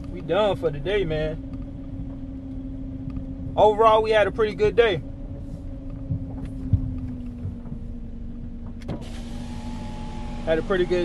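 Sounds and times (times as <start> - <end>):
vehicle engine idling: 0.0 - 11.0
electric window motor whine: 8.8 - 11.0.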